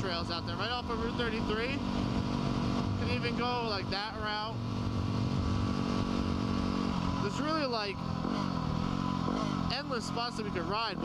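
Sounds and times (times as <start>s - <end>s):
motorcycle engine cruising: 0.0s - 11.0s
wind rush: 4.6s - 7.3s.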